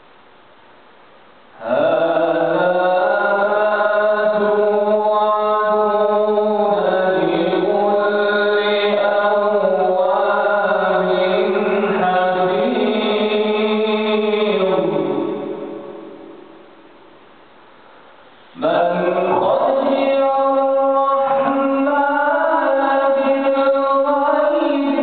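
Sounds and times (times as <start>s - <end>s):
man chanting melodically: 1.6s - 16.4s, 18.6s - 25.0s.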